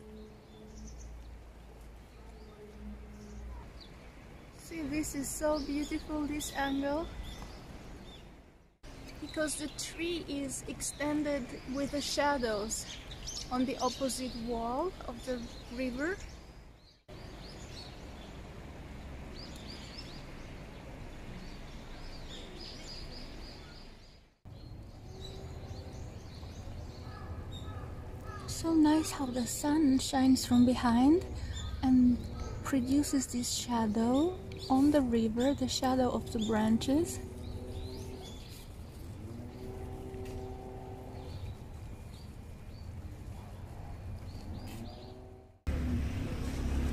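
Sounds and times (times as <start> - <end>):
small birds chirping: 0.0 - 18.5, 19.3 - 45.4
outdoor background noise: 0.0 - 46.9.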